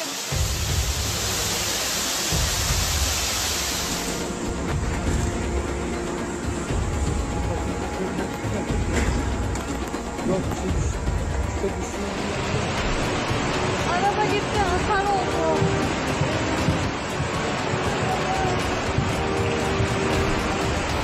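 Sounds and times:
rushing floodwater: 0.0s - 21.0s
music with heavy bass: 0.3s - 21.0s.

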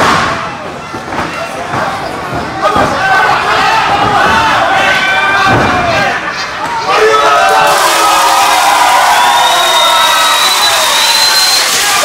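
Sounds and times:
crowd shouting and cheering: 0.0s - 12.0s
long high whistle: 8.7s - 12.0s.

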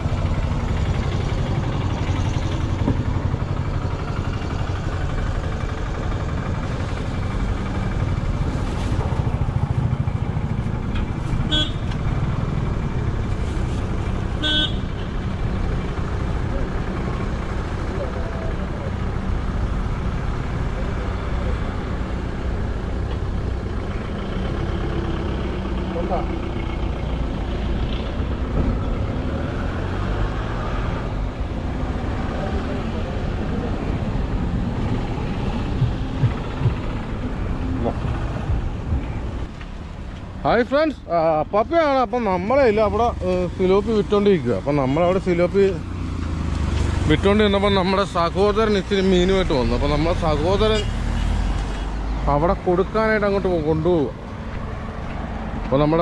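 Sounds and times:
road traffic engine rumble: 0.0s - 56.0s
vehicle horn toots: 11.5s - 12.0s, 14.4s - 15.1s.

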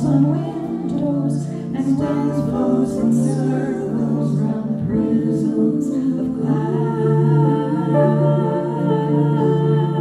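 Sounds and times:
women singing in harmony: 0.0s - 10.0s.

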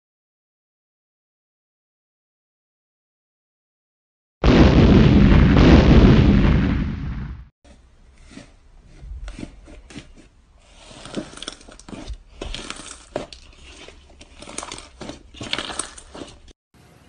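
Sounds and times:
cartoon bomb explosion: 4.4s - 7.5s
slime squeezing crackles: 10.6s - 16.5s.

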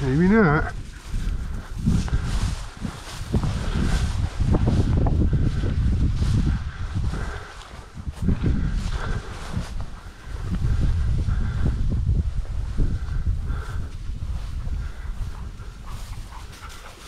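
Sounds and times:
footsteps through dry grass: 0.0s - 17.0s
wind rumble on microphone: 0.0s - 17.0s
body movement on microphone: 0.7s - 17.0s.

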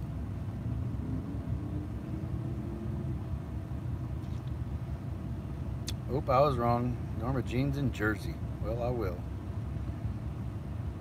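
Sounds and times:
truck rumble from inside cab: 0.0s - 11.0s.

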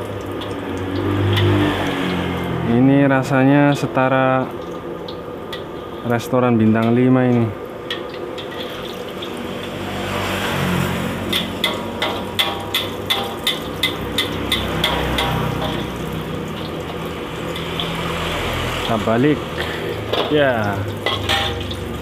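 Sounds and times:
omelette sizzling in a wok: 0.0s - 10.0s, 10.7s - 22.0s.

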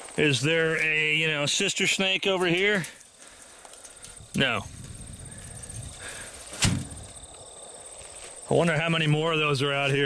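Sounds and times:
board thudding onto ground: 6.5s - 7.2s.

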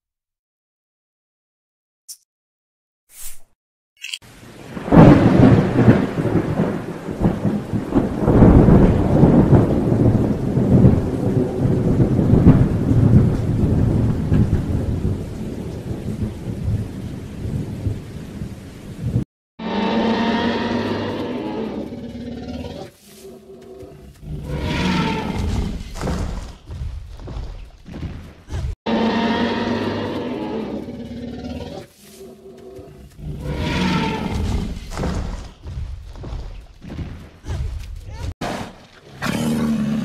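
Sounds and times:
rain: 4.2s - 19.3s
rolling thunder: 4.6s - 19.2s.

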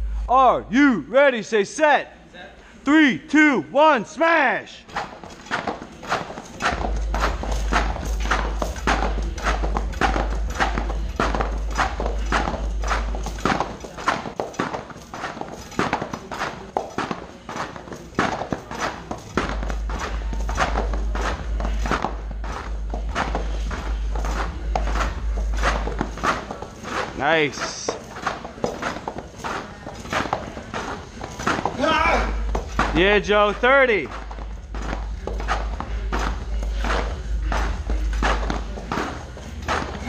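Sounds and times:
battle rope slamming on mats: 4.9s - 40.0s.

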